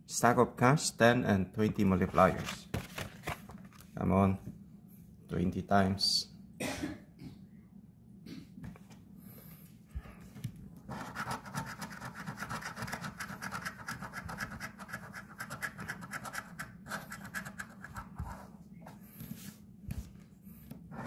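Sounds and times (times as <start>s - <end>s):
coin scratching lottery ticket: 10.9s - 18.4s.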